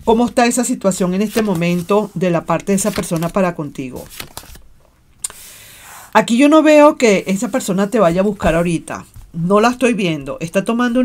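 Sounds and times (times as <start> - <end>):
soft steady hiss: 0.0 - 11.0
tarot cards handled on table: 1.1 - 4.6.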